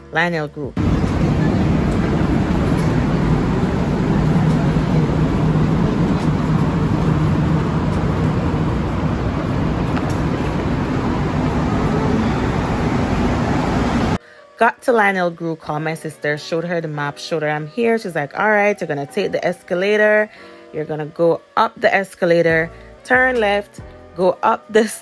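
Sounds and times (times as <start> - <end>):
train rumbling: 0.8 - 14.2.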